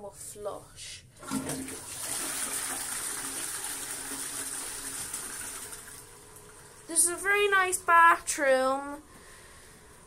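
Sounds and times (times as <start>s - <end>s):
toilet flushing: 1.2s - 7.9s.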